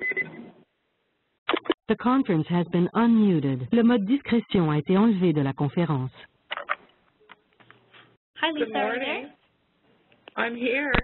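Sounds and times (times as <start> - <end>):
automated voice announcing: 1.9 - 6.3.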